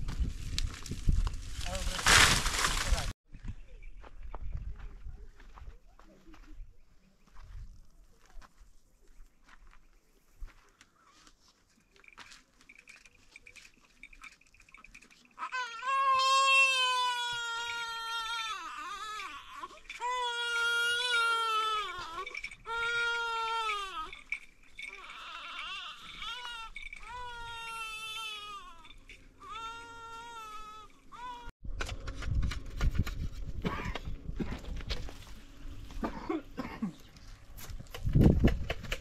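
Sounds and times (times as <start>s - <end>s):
infant crying: 15.4s - 31.5s.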